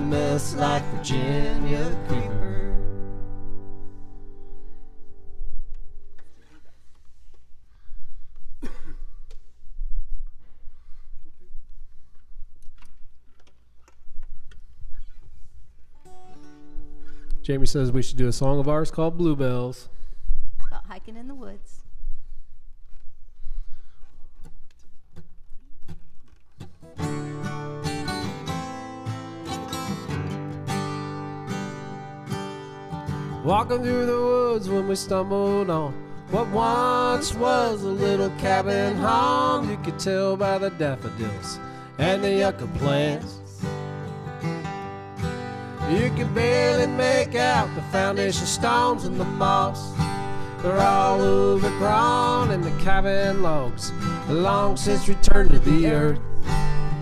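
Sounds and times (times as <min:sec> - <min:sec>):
people singing: 0:00.0 - 0:02.9, 0:33.4 - 0:43.7, 0:45.8 - 0:56.2
acoustic guitar chord ringing: 0:00.0 - 0:06.4, 0:16.0 - 0:17.3, 0:26.9 - 0:57.0.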